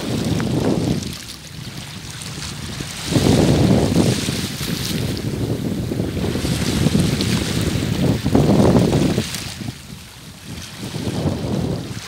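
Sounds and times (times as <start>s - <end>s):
small waves washing on rocks: 0.0s - 12.0s
wind buffeting microphone: 0.0s - 12.0s.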